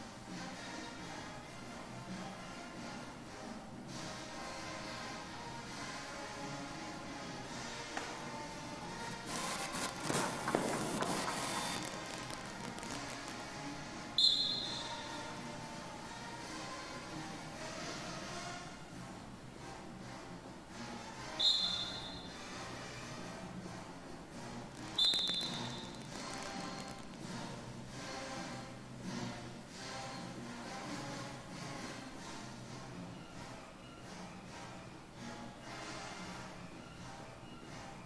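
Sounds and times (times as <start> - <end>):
clattering noise: 9.1 - 13.7, 24.8 - 27.3
shrill whistle blast: 14.2 - 15.2, 21.3 - 22.4, 24.8 - 26.0.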